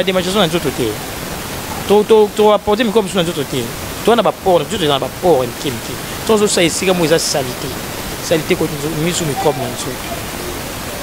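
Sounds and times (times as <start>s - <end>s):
person speaking: 0.0s - 1.1s, 1.7s - 10.5s
steady hiss: 0.0s - 11.0s.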